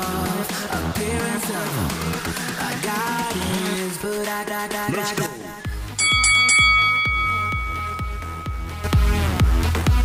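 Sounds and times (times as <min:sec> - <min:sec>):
electronic dance music: 0:00.0 - 0:10.0
electronic timer chime: 0:06.0 - 0:09.6.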